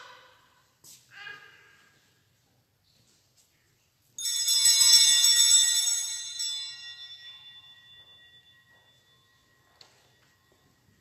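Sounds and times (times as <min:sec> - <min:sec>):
small altar bells jingling: 0:04.2 - 0:11.0.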